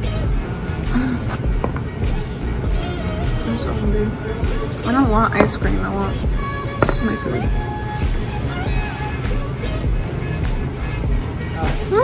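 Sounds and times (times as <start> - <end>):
song with steady beat: 0.0 - 12.0.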